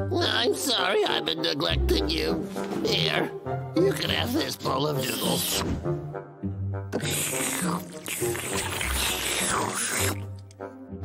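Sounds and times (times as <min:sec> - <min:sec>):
background music: 0:00.0 - 0:11.0
cartoon slurping and munching: 0:06.9 - 0:10.6.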